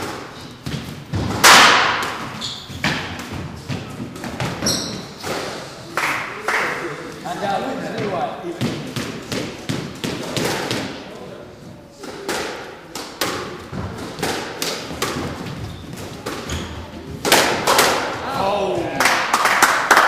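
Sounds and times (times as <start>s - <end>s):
squash ball knocks: 0.0s - 5.6s, 8.0s - 11.0s, 12.0s - 18.2s.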